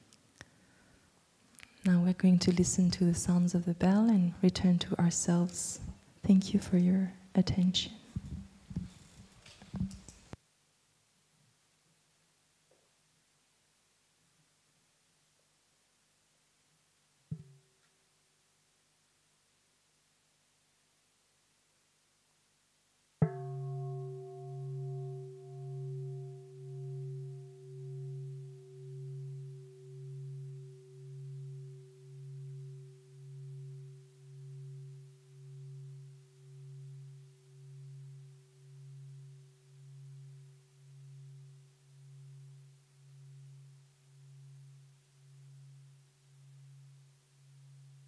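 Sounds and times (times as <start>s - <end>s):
bowl bell ringing: 23.2s - 48.0s.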